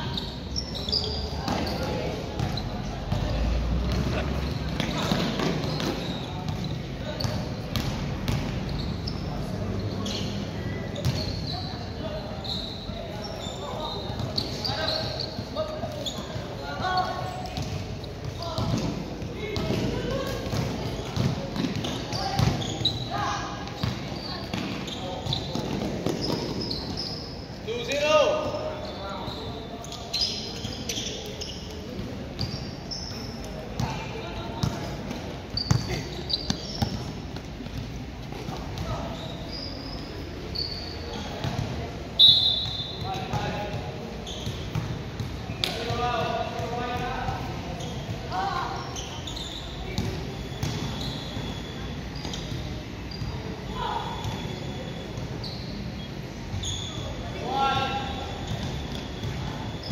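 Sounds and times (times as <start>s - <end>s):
sneakers squeaking on floor: 0.0s - 59.9s
basketball bouncing: 7.2s - 8.6s.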